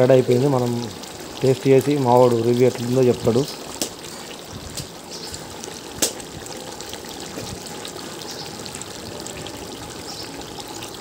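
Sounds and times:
curry bubbling in a pot: 0.0s - 11.0s.

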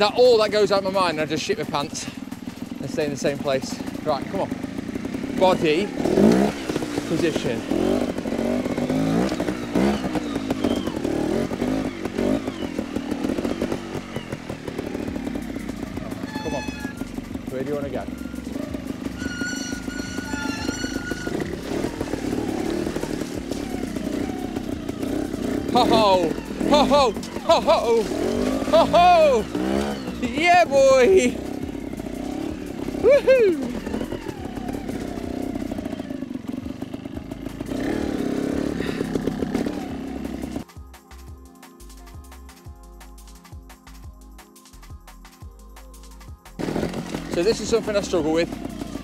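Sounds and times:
motorcycle engine revving: 0.0s - 40.7s, 46.6s - 49.0s
music with a beat: 40.6s - 49.0s.

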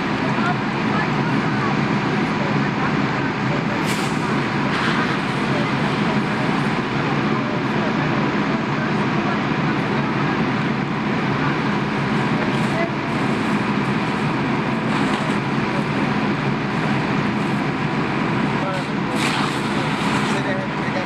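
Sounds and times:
diesel engine droning: 0.0s - 21.0s
faint voices: 0.0s - 21.0s.

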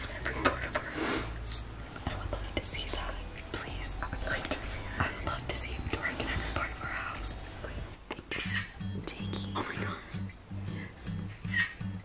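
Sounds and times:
people whispering: 0.0s - 7.8s.

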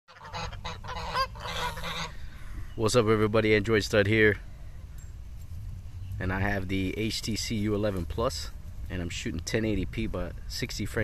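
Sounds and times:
geese honking: 0.1s - 2.5s.

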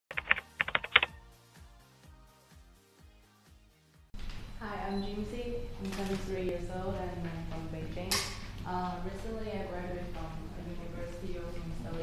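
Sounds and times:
keyboard key clicks: 0.1s - 1.1s
soft music beat: 0.1s - 3.8s.

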